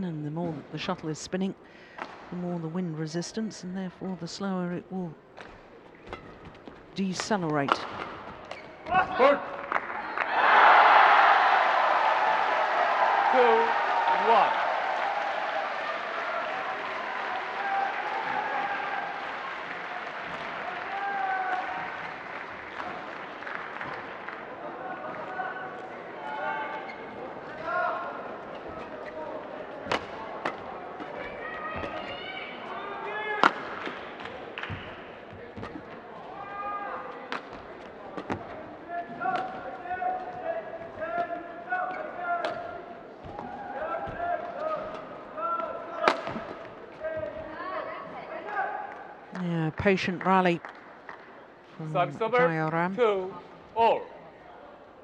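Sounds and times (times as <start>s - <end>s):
shoes squeaking on court: 5.5s - 9.2s, 28.4s - 32.7s
applause: 9.6s - 24.6s
racket striking shuttlecock: 33.4s - 34.8s.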